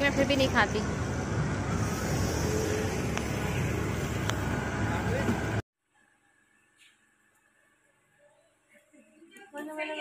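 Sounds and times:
road traffic rumble: 0:00.0 - 0:05.6.

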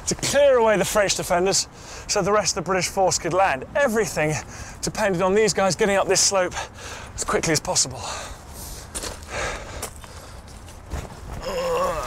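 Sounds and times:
man breathing hard: 0:01.7 - 0:02.1, 0:04.4 - 0:04.8, 0:06.6 - 0:07.2, 0:08.0 - 0:10.6
scuffing and rustling of movement: 0:08.4 - 0:12.0.

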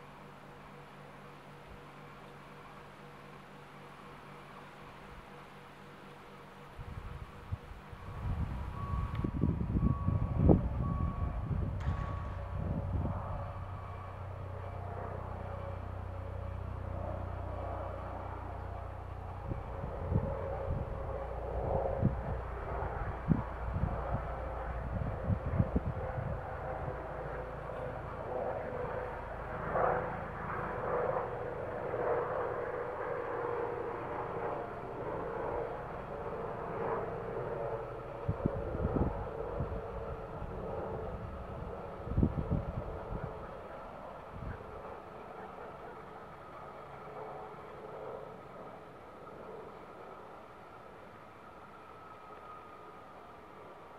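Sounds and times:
electric train hum: 0:00.0 - 0:53.9
low rumble with knocks: 0:08.3 - 0:15.2.

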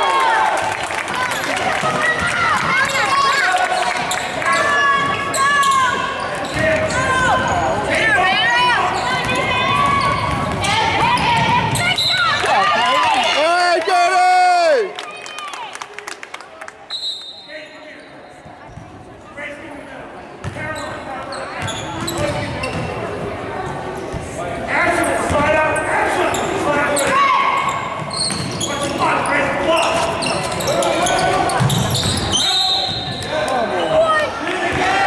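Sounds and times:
crowd talking in echoing hall: 0:00.0 - 0:35.0.

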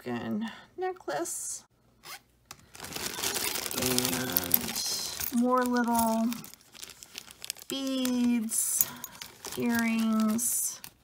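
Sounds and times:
plastic bag crinkling: 0:02.6 - 0:11.0.

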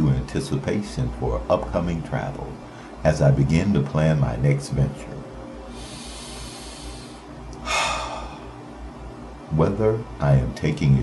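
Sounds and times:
faint low hum: 0:00.0 - 0:11.0
person breathing in: 0:05.7 - 0:08.6.

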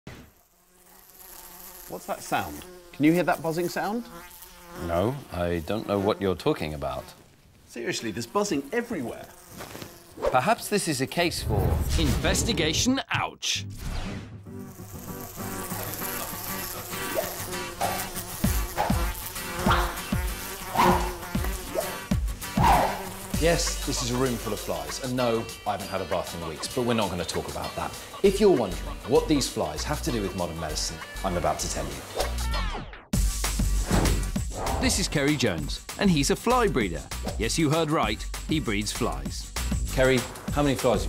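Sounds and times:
flies buzzing: 0:00.1 - 0:11.3, 0:14.5 - 0:32.6
short falling swoops: 0:33.8 - 0:34.9.

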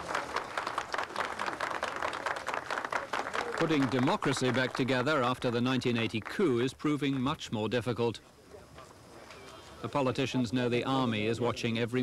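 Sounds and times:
group of people clapping: 0:00.0 - 0:07.4.

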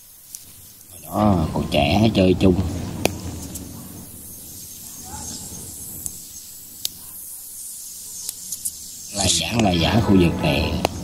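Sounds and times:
high-pitched hiss: 0:00.0 - 0:11.0
faint sharp clicks: 0:00.3 - 0:00.9, 0:06.8 - 0:07.0, 0:08.2 - 0:08.8, 0:10.8 - 0:11.0.

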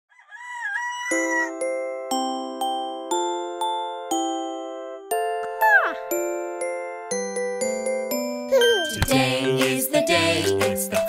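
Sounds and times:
bell-like chime notes: 0:06.2 - 0:09.0.

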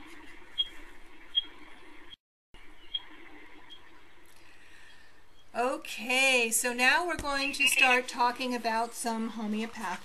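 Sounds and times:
room noise: 0:00.0 - 0:10.0
short high-pitched beep: 0:07.4 - 0:08.0.

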